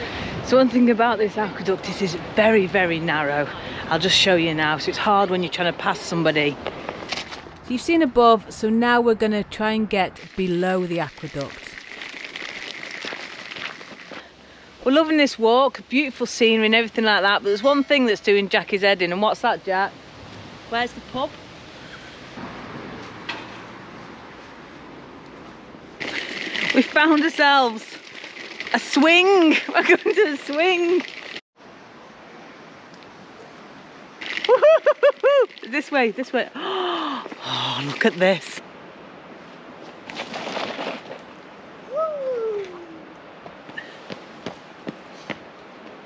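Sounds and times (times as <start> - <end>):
woman speaking: 7.7 - 11.8, 14.9 - 19.9, 26.8 - 28.0, 35.7 - 38.6
pushchair wheels crunching on gravel: 11.2 - 14.4, 26.0 - 31.4, 40.0 - 41.4
flowing river water: 31.0 - 39.8.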